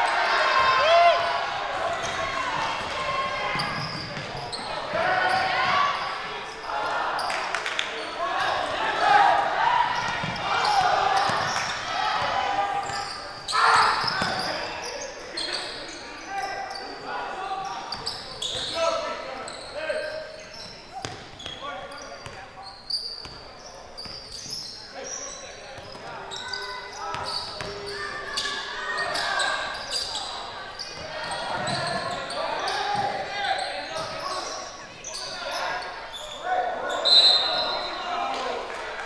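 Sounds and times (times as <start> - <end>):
sneakers squeaking: 0.0 - 38.6.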